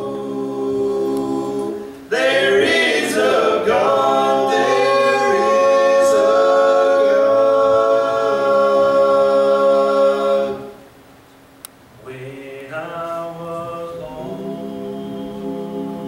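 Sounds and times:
male vocal quartet singing: 0:00.0 - 0:10.8, 0:12.0 - 0:16.0.

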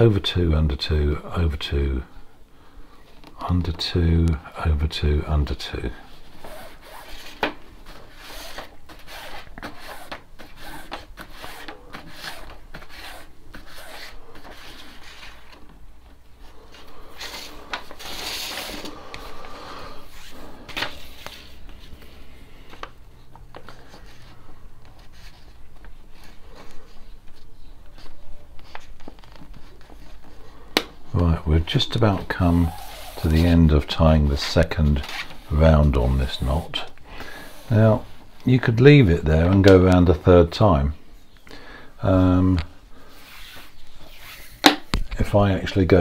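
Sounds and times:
cord rubbing and rasping: 0:06.2 - 0:15.7, 0:32.2 - 0:33.7.

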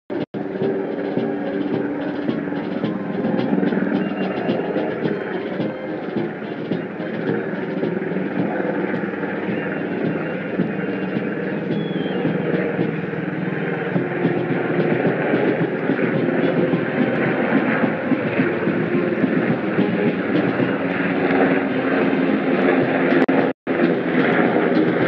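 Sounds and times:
distant brass band music: 0:00.1 - 0:25.0
open-air noise: 0:00.1 - 0:25.0.

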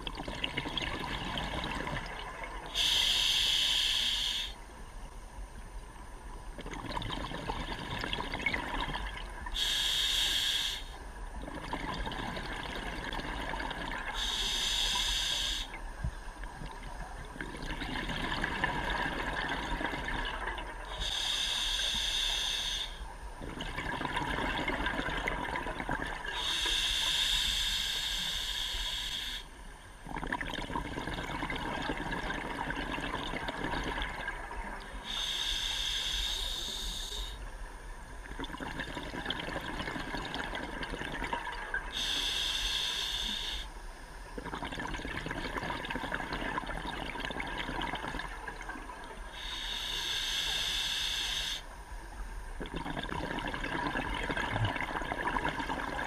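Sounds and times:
scuba regulator breathing: 0:02.7 - 0:04.6, 0:09.6 - 0:11.0, 0:14.2 - 0:15.8, 0:20.9 - 0:23.0, 0:26.3 - 0:29.6, 0:35.0 - 0:37.4, 0:41.9 - 0:43.8, 0:49.3 - 0:51.8
bubbling: 0:06.6 - 0:09.4, 0:11.4 - 0:14.3, 0:16.4 - 0:21.0, 0:23.4 - 0:26.3, 0:30.0 - 0:34.6, 0:38.2 - 0:41.9, 0:44.4 - 0:49.2, 0:52.6 - 0:56.0.

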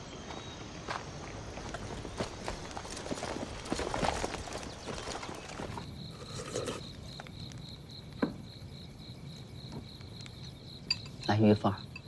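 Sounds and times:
horse hooves clip-clopping: 0:01.3 - 0:05.9.

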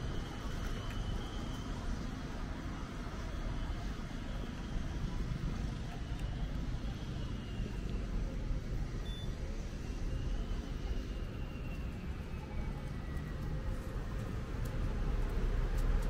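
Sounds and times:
road traffic hum: 0:00.0 - 0:16.0.

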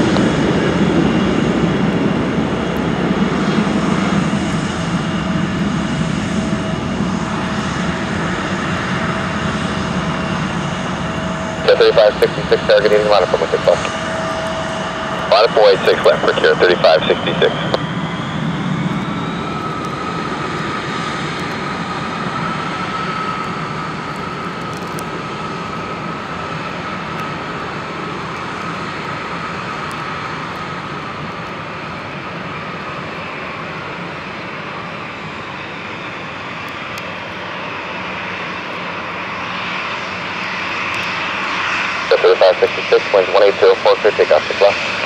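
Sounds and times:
jet engines idling: 0:00.0 - 0:45.0.

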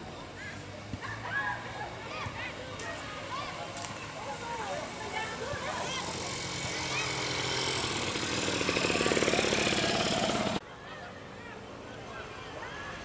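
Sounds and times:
people talking: 0:00.0 - 0:13.0
motor engine running: 0:03.3 - 0:10.6.

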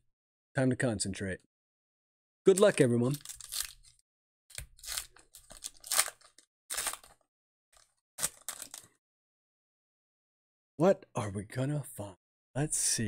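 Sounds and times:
foil wrapper tearing and crinkling: 0:02.5 - 0:07.2, 0:07.8 - 0:08.9.

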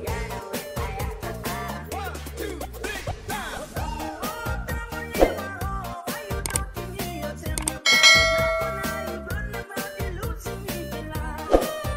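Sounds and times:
bright bell chime: 0:07.9 - 0:09.5.

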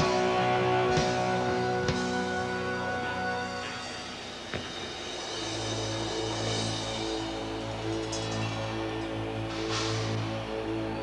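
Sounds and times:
low droning note: 0:00.0 - 0:11.0.

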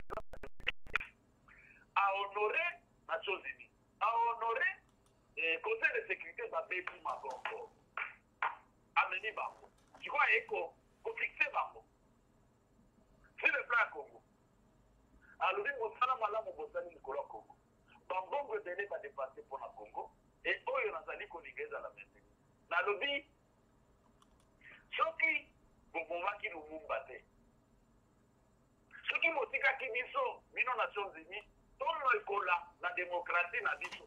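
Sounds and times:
person speaking over telephone: 0:00.0 - 0:01.1, 0:02.0 - 0:07.8, 0:09.0 - 0:11.8, 0:13.3 - 0:14.2, 0:15.3 - 0:23.3, 0:24.7 - 0:27.2, 0:28.9 - 0:34.0
person talking: 0:02.0 - 0:08.2, 0:09.0 - 0:11.9, 0:28.9 - 0:34.0.

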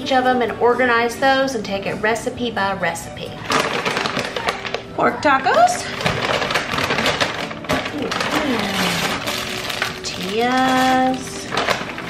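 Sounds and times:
plastic packages rustling: 0:03.3 - 0:05.0, 0:05.6 - 0:12.0
paper bag crinkling: 0:03.4 - 0:04.9, 0:05.7 - 0:12.0.

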